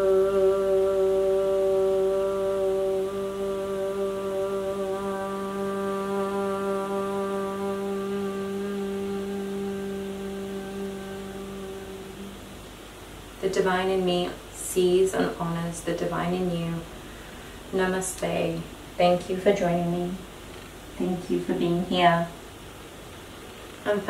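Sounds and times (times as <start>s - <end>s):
woman chanting om: 0.0s - 12.7s, 13.4s - 20.3s.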